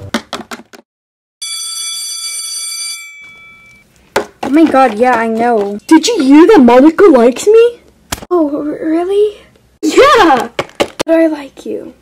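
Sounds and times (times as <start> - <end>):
school bell ringing: 1.4 - 3.8.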